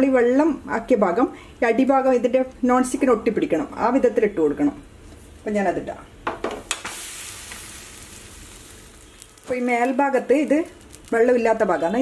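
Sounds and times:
hot pan sizzling: 6.2s - 12.0s.

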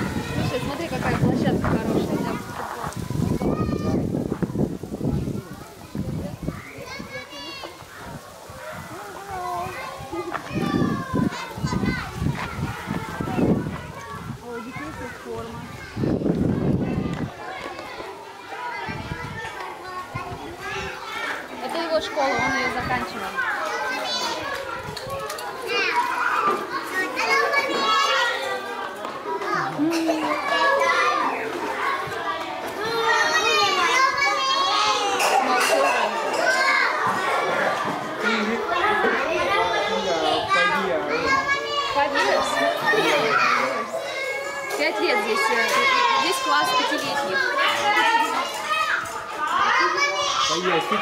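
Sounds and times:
children chattering and calling: 0.0s - 51.0s.

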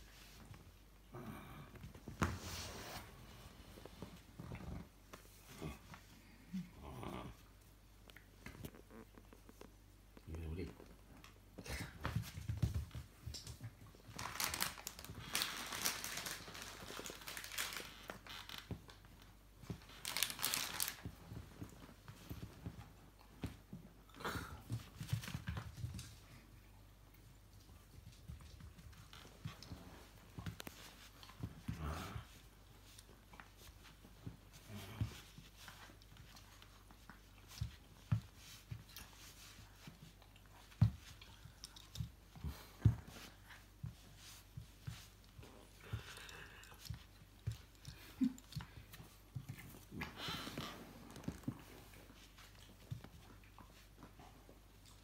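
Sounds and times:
paws and toy scuffling on rug: 0.0s - 55.0s.

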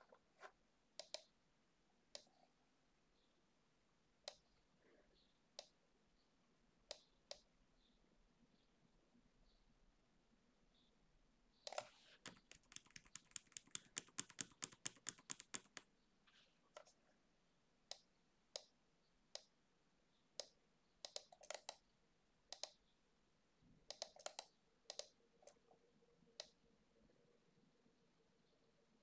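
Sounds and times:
typing on computer keyboard: 11.7s - 15.9s, 21.1s - 21.8s.

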